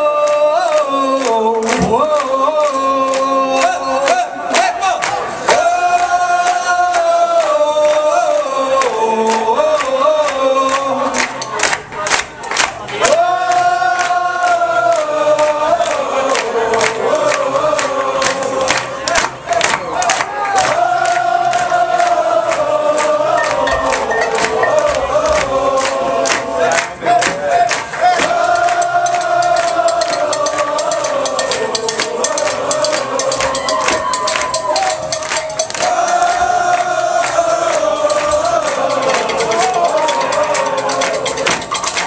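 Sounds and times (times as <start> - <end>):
voices singing long wordless notes: 0.0 - 12.0, 12.8 - 42.0
crowd noise: 0.0 - 42.0
steady handclaps: 0.2 - 42.0.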